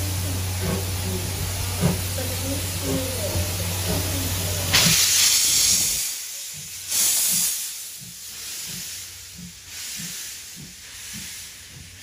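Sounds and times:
steam hissing bursts: 0:00.0 - 0:12.0
steam locomotive pulling out: 0:00.0 - 0:12.0.

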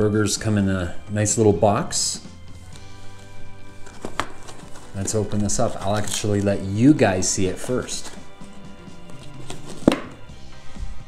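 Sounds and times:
background music with held notes: 0:00.0 - 0:11.0
paperboard box snapping: 0:03.9 - 0:04.9, 0:09.2 - 0:10.2.

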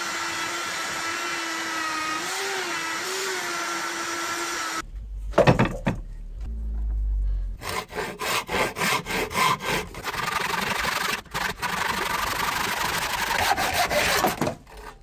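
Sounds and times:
hand saw cutting wood: 0:00.0 - 0:04.8, 0:07.6 - 0:15.0
low rumble: 0:04.8 - 0:07.6.

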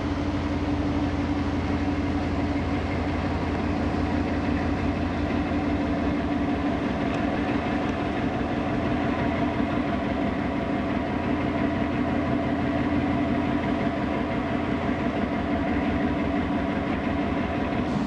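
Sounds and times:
ship engine droning: 0:00.0 - 0:18.0.

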